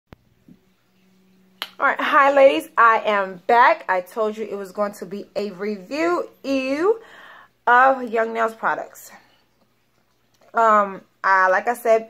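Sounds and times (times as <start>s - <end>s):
faint steady hum: 0.1s - 12.0s
woman speaking: 1.8s - 9.3s, 10.5s - 12.0s.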